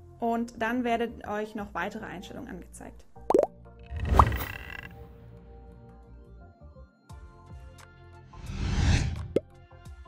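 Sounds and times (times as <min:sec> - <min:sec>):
soft background music: 0:00.0 - 0:10.0
whoosh with rising tone: 0:08.4 - 0:09.4.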